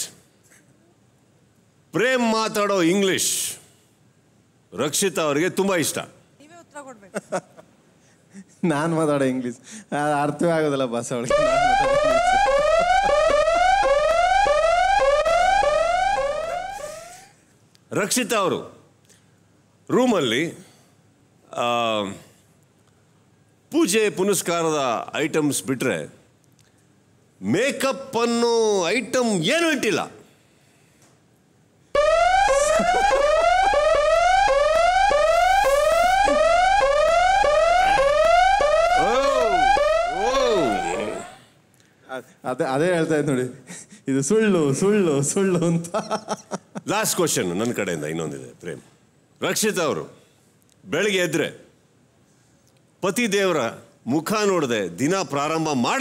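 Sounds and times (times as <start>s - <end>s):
electronic whooping alarm: 11.3s - 17.2s, 32.0s - 41.4s.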